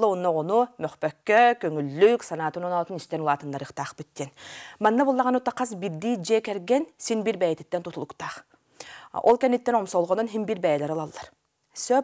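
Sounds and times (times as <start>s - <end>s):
woman talking: 0.0s - 8.5s, 9.2s - 12.0s.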